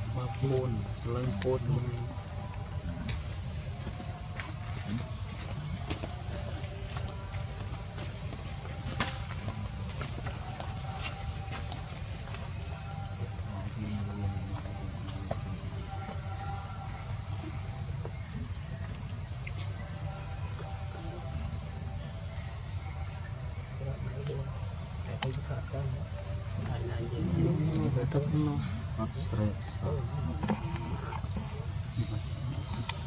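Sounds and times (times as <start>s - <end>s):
shrill insect chorus: 0.0s - 33.0s.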